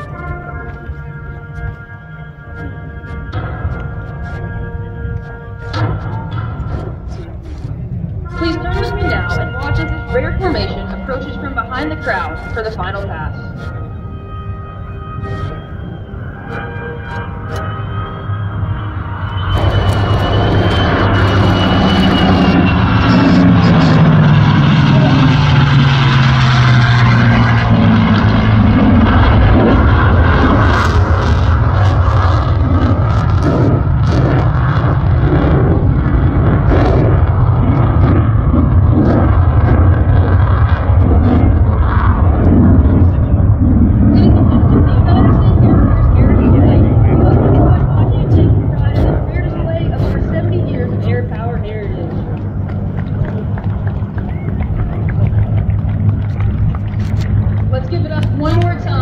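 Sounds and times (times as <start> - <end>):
jet engine flying low: 0.0 - 59.0.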